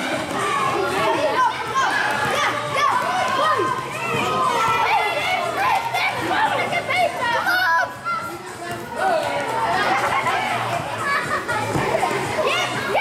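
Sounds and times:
children shouting: 0.0s - 13.0s.

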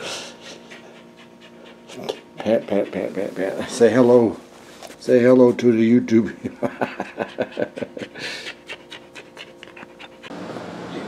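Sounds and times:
dog panting: 0.1s - 4.2s, 6.9s - 10.4s.

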